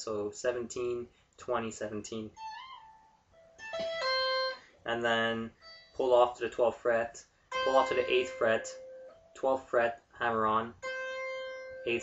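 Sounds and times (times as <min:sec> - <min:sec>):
clean electric guitar tapping: 0:03.6 - 0:04.6.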